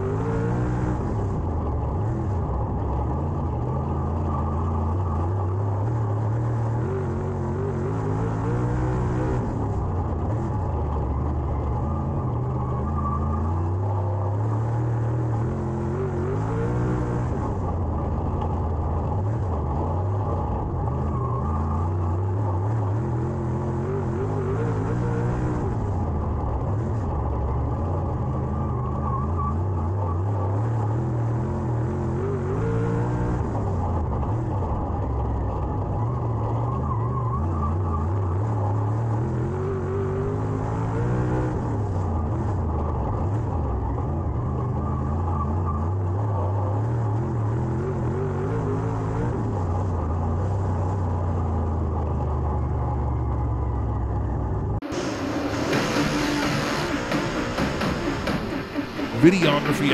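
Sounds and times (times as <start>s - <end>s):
racing car engine revving: 0.0s - 52.2s, 54.7s - 59.9s.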